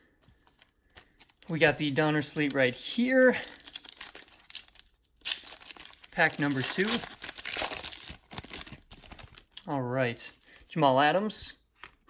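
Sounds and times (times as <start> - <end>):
foil wrapper crinkling: 0.4 - 9.6.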